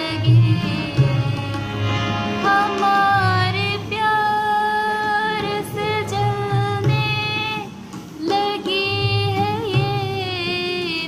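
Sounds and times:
woman singing: 0.0 - 1.8, 2.4 - 11.0.

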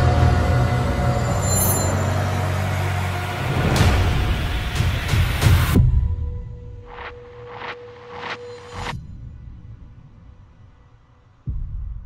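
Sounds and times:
deep low drone: 0.0 - 6.6.

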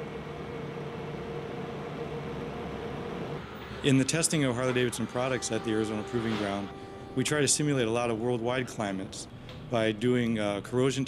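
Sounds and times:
vehicle hum and hiss: 0.8 - 7.9
faint held tone: 4.4 - 8.8.

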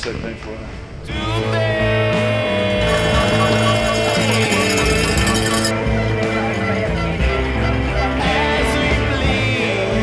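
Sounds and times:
guitar-led rock music: 1.1 - 10.0.

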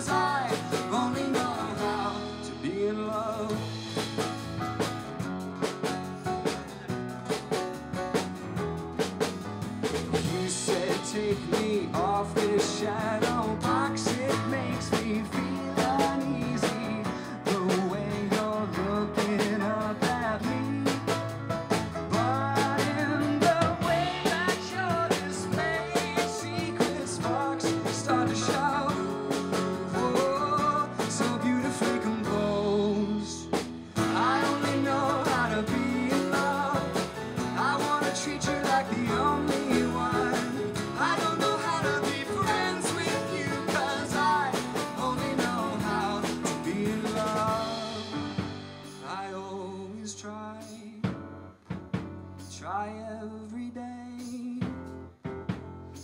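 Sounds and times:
man singing lead: 0.0 - 4.4, 10.0 - 51.2, 52.5 - 54.9
electric bass: 0.0 - 49.2
grand piano: 0.0 - 56.0.

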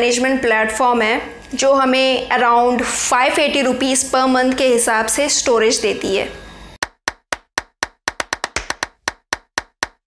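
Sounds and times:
rhythmic sharp percussive hits: 6.8 - 10.0.

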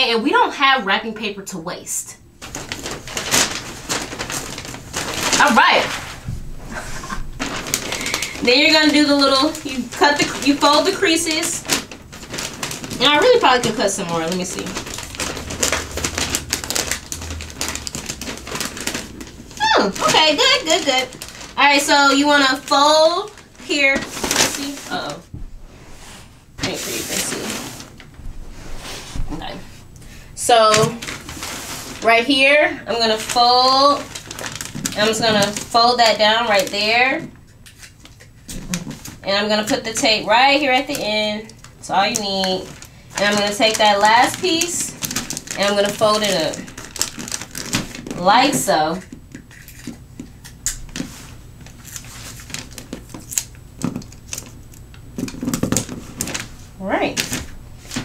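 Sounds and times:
wrapping paper rustling and crinkling: 2.4 - 58.0.

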